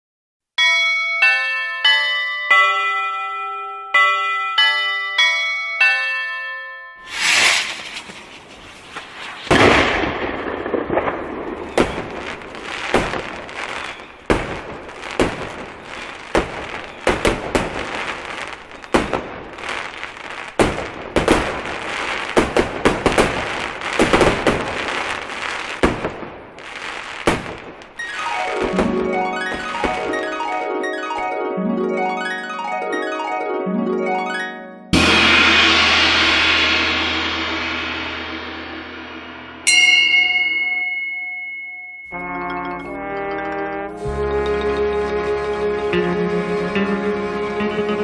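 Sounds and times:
fireworks bangs and crackles: 0:07.1 - 0:31.3.

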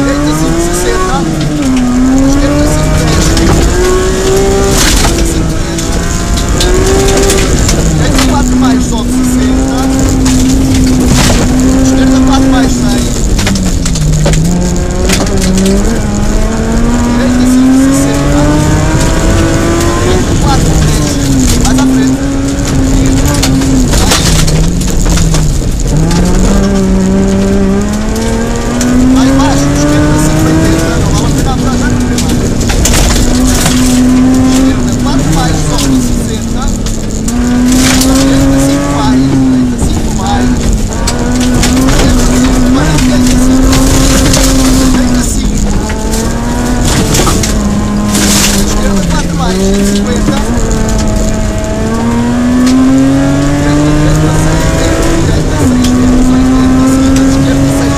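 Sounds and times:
rally car engine revving: 0:00.0 - 0:57.9
tyres rumbling on gravel: 0:00.0 - 0:57.9
stones striking car: 0:30.0 - 0:56.3.

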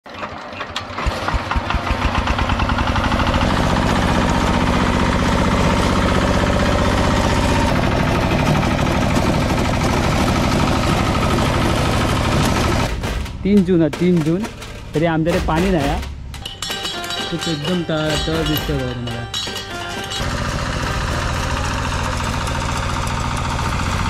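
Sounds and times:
diesel tiller engine running: 0:00.1 - 0:24.0.

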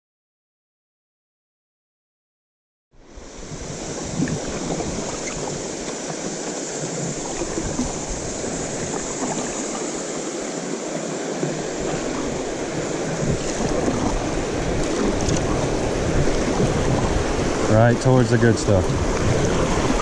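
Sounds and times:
creek water rushing: 0:03.0 - 0:20.0
wind on microphone: 0:03.0 - 0:20.0.

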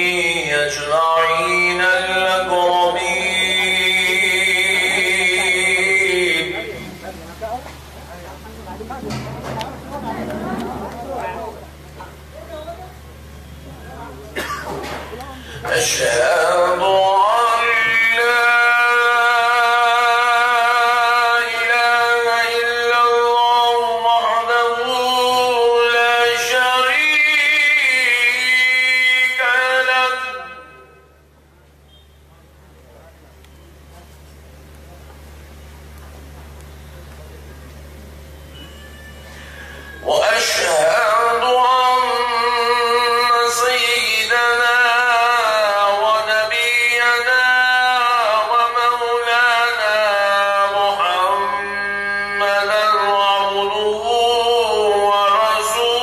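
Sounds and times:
man chanting melodically: 0:00.0 - 0:07.2, 0:15.6 - 0:31.3, 0:39.9 - 0:56.0
low steady hum: 0:00.0 - 0:56.0.

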